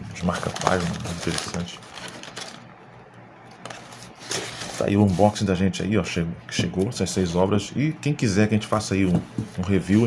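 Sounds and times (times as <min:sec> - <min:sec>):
paper rustling: 0:00.2 - 0:02.6, 0:03.5 - 0:05.4.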